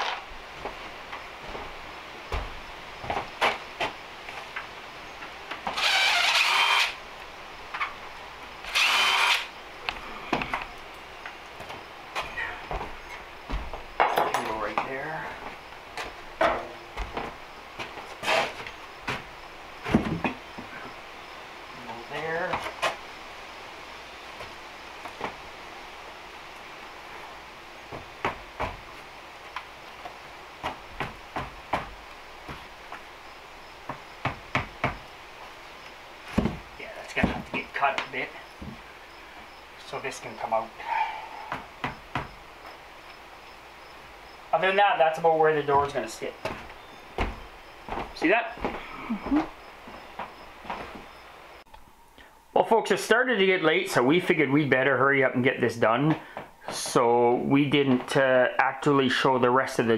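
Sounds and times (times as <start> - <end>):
power tool cutting wood: 5.7 - 7.0, 8.7 - 9.5
wood knocks and taps: 30.6 - 33.0, 33.9 - 35.0, 36.3 - 36.6, 46.4 - 48.8.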